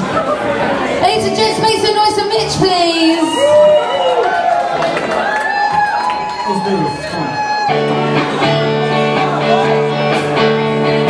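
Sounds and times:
crowd voices: 0:00.0 - 0:11.0
electric guitars ringing chord: 0:07.7 - 0:11.0.

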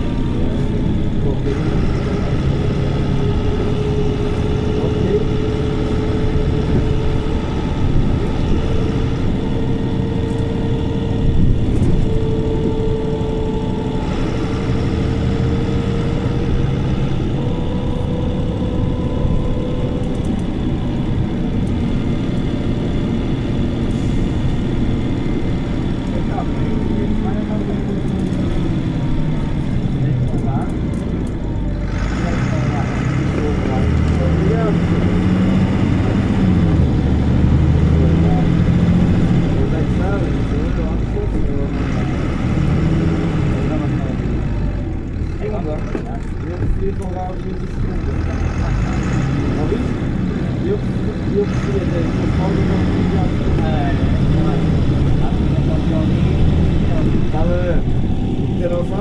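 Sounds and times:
bus diesel engine running: 0:00.0 - 0:59.0
rising whine: 0:00.0 - 0:59.0.

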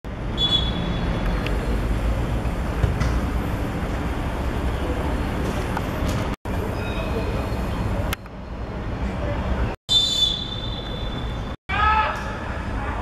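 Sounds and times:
pea whistle blast: 0:00.4 - 0:00.9, 0:09.9 - 0:11.5.

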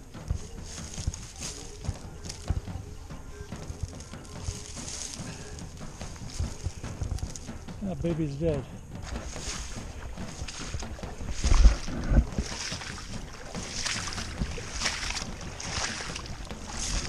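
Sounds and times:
heavy thuds: 0:00.0 - 0:17.0
boots sloshing through water: 0:09.0 - 0:17.0.

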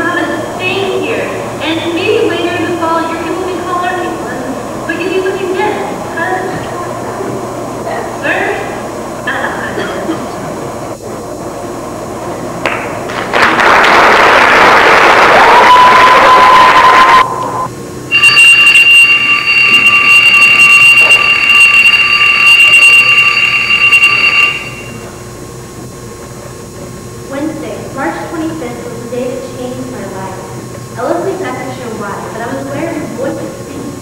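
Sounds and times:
high-pitched electronic tone: 0:18.1 - 0:25.1.

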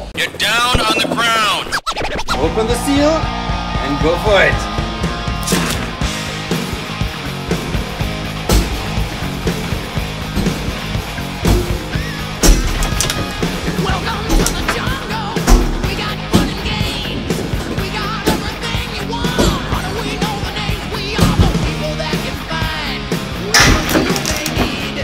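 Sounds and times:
music playing: 0:00.0 - 0:25.0.

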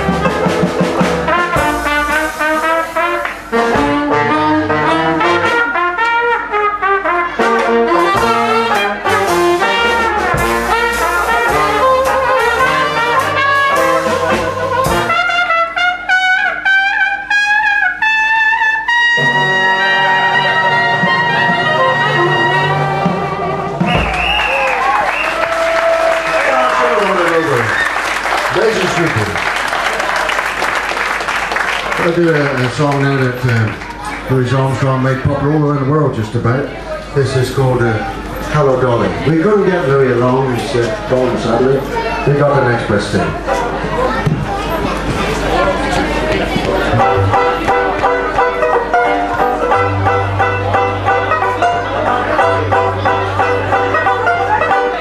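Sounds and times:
lead trumpet: 0:00.0 - 0:29.5, 0:46.8 - 0:55.0
jazz band playing: 0:00.0 - 0:55.0
audience applause: 0:03.1 - 0:03.5, 0:23.7 - 0:35.0.

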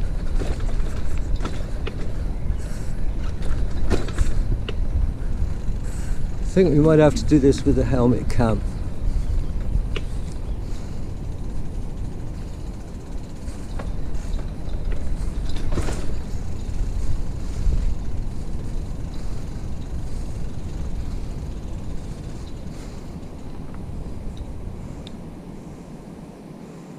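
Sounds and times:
bicycle wheels rolling on dirt: 0:00.0 - 0:26.9
light bicycle clicks: 0:00.0 - 0:26.9.

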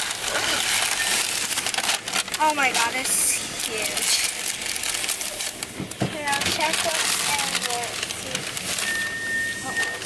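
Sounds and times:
paper bag rustling: 0:00.0 - 0:10.0.

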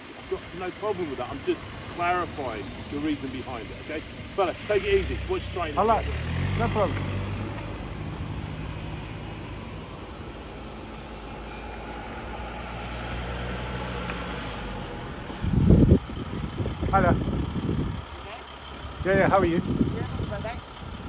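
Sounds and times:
van engine running steadily: 0:00.0 - 0:13.8, 0:14.4 - 0:21.0
car pulling away: 0:00.0 - 0:21.0.

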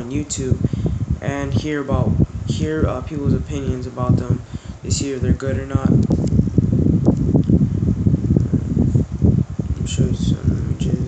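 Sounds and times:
microphone buffeting rumble: 0:00.0 - 0:11.0.

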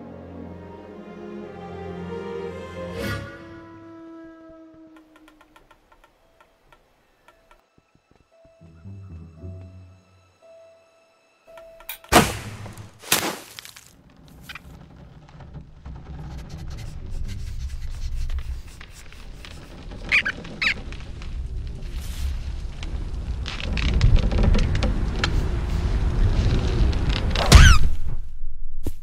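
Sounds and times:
squeaky cries: 0:20.0 - 0:20.8
low rumble: 0:20.8 - 0:29.0.

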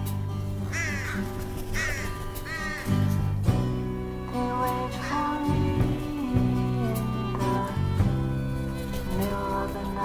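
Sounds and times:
crow cawing: 0:00.7 - 0:03.1, 0:04.9 - 0:05.4
low lullaby music: 0:01.8 - 0:10.0.

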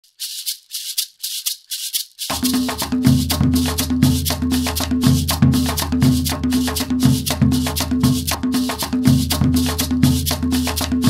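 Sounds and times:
shaker rhythm: 0:00.0 - 0:11.0.

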